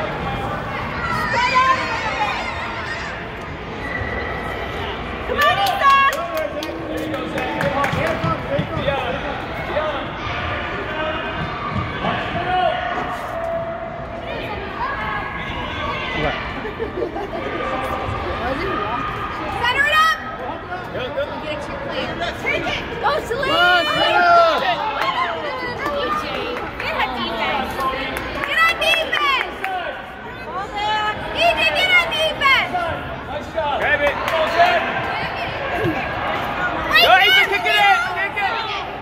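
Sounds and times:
crowd chatter: 0:00.0 - 0:39.0.

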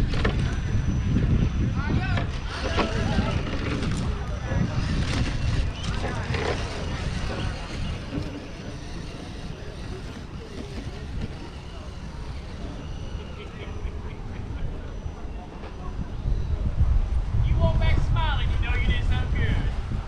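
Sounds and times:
low rumble on microphone: 0:00.0 - 0:20.0.

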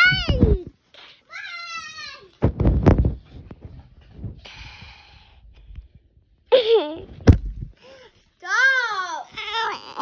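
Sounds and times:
high-pitched vocal cries: 0:09.3 - 0:10.0.

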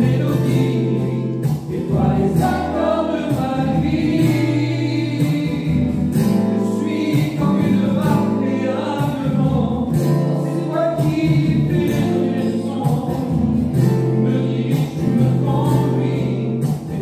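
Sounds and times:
voices singing a hymn: 0:00.0 - 0:17.0.

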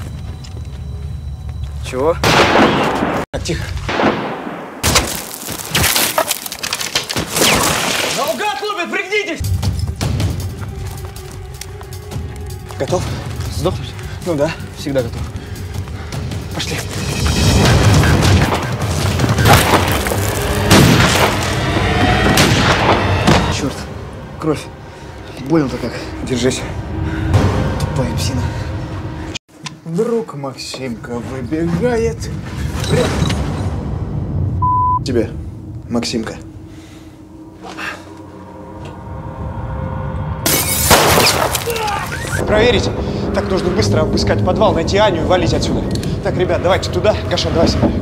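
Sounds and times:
tense film music: 0:00.0 - 0:04.8, 0:08.4 - 0:48.0
crashing and shattering debris: 0:04.8 - 0:08.6, 0:17.2 - 0:23.4, 0:40.5 - 0:42.4.

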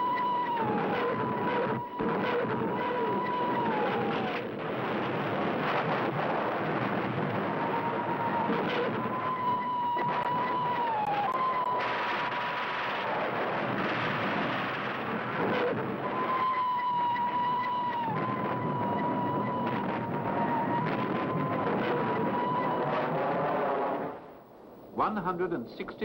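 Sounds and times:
fighter jet engine drone: 0:00.0 - 0:24.4.

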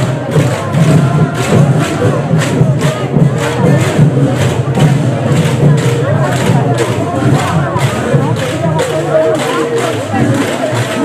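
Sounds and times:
dhol drums and cymbals: 0:00.0 - 0:11.0
voices singing and calling out: 0:00.0 - 0:11.0.

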